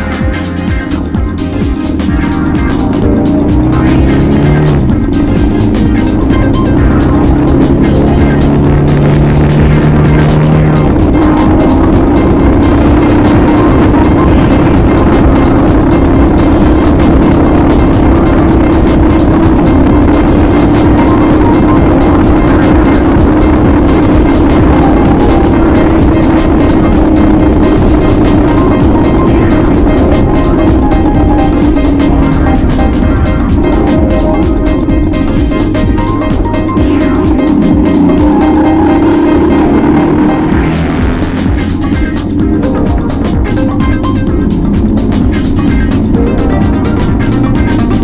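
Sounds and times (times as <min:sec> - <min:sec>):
motorcycle engine: 0:00.0 - 0:48.0
music playing: 0:00.0 - 0:48.0.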